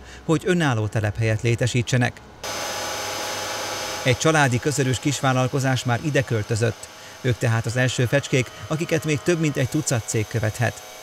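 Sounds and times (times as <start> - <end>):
machine tools whining: 2.4 - 11.0.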